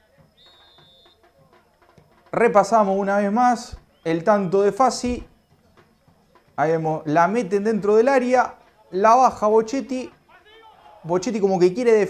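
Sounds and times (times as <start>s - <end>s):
referee's whistle blast: 0.1s - 5.6s.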